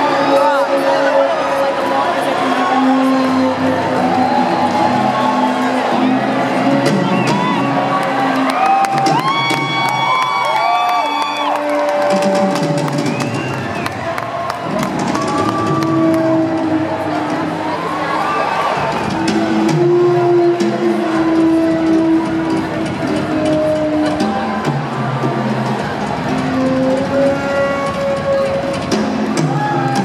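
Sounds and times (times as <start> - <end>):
concert crowd cheering: 0.0 - 30.0
live band music: 0.0 - 30.0
long whoops: 8.5 - 12.1.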